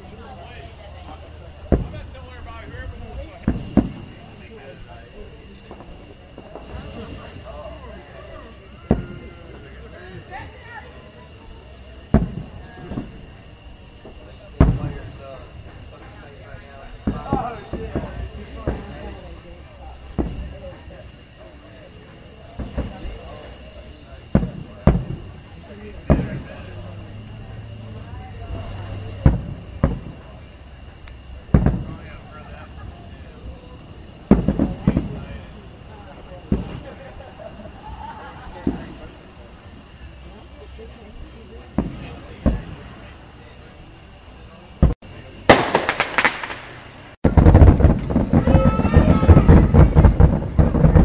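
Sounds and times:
firework crackles: 0.0s - 51.0s
firework shells booming: 0.1s - 40.4s, 41.1s - 51.0s.

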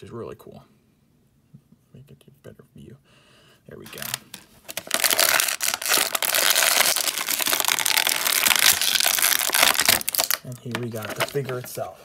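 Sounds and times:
plastic packaging crinkling: 3.9s - 11.9s.

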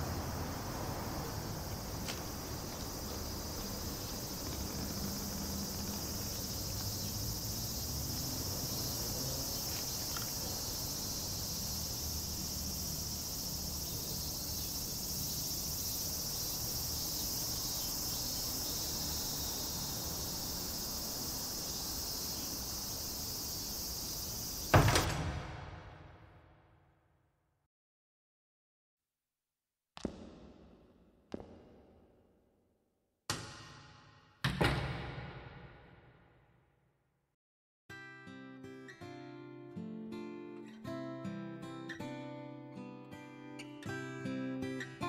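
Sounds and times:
insects chirring: 0.0s - 25.0s.

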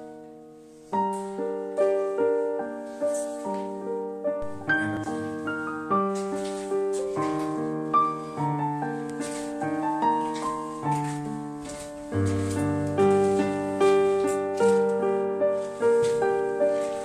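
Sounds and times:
slow piano music: 0.0s - 17.0s.

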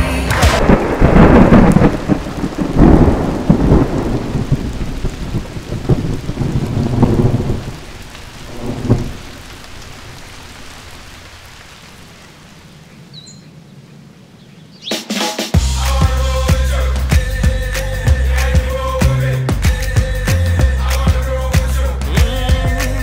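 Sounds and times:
thunder rumbling: 0.0s - 12.9s
steady rain: 0.0s - 14.8s, 15.6s - 23.0s.

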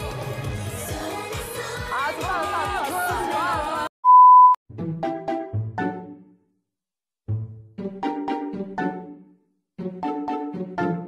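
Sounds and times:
upbeat pop music: 0.0s - 4.6s
sine-tone beep: 4.0s - 4.6s.

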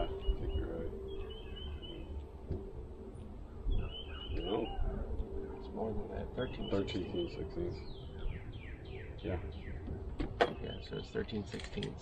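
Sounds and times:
low outdoor rumble: 0.0s - 12.0s
songbird chirping: 0.0s - 12.0s.

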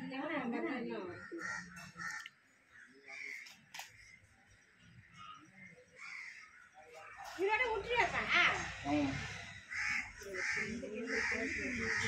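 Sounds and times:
faint voices: 0.0s - 12.0s
crow cawing: 1.1s - 4.2s, 5.9s - 6.7s, 9.6s - 12.0s.

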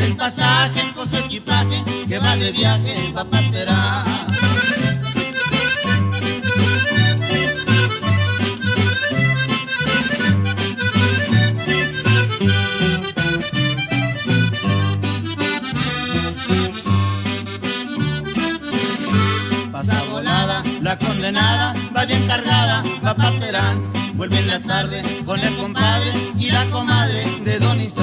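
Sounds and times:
button accordion melody: 0.0s - 28.0s
repeating bass line: 0.0s - 28.0s
string accompaniment: 4.2s - 19.9s.

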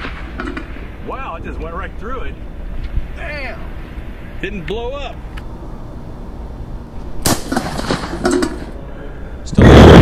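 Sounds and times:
shotgun shot: 7.2s - 8.7s.

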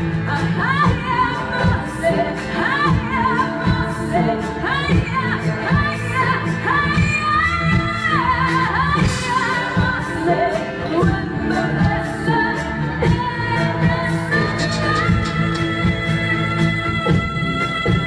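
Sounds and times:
bass guitar: 0.0s - 18.0s
steady drum beat: 0.0s - 18.0s
woman singing: 0.0s - 18.0s.

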